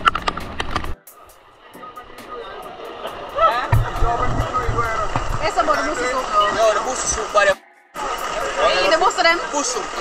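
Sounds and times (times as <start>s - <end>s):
music with bass beat: 0.0s - 10.0s
people talking: 1.6s - 10.0s.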